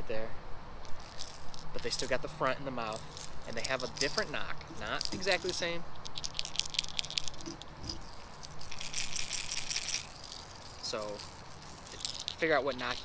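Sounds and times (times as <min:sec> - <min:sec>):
lure rattles clicking: 0:00.8 - 0:13.0.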